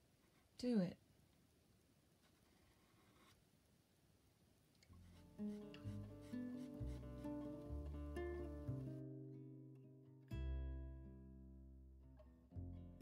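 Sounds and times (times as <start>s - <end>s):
acoustic guitar plucked notes: 5.0s - 13.0s.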